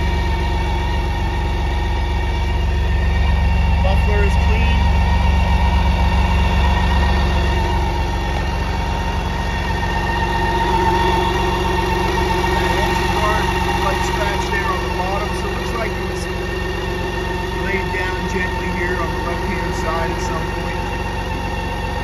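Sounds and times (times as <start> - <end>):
vehicle engine idling: 0.0 - 22.0.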